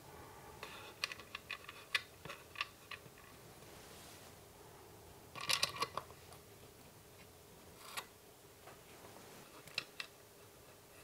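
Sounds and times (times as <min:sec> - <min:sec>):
faint rustle: 0:03.2 - 0:04.5.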